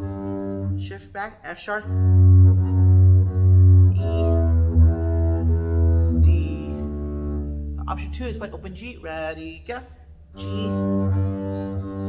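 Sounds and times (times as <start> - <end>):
bowed double bass notes: 0.0 - 12.0.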